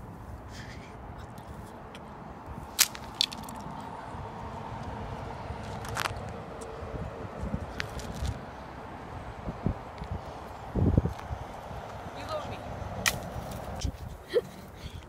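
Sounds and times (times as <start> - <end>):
low outdoor rumble: 0.0 - 15.0
sharp cracks: 2.7 - 3.7, 13.0 - 13.6.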